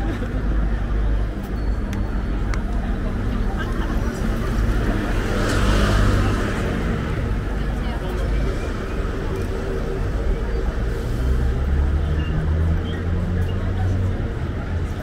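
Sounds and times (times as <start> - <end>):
traffic engine hum: 0.0 - 15.0.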